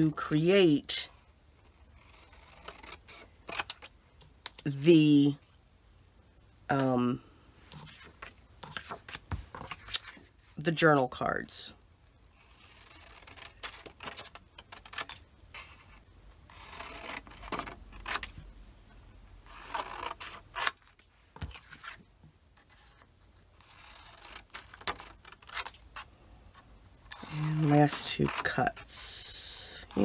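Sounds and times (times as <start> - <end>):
paper sheets sliding and shuffling: 7.7 - 10.3.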